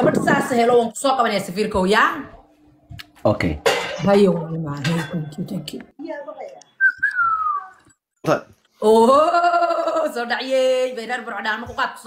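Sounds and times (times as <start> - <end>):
person whistling sliding note: 6.8 - 7.8.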